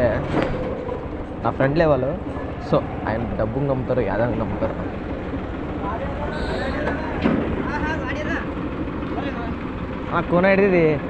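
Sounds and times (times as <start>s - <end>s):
motorcycle engine drone: 0.0s - 11.0s
road and wind noise: 0.0s - 11.0s.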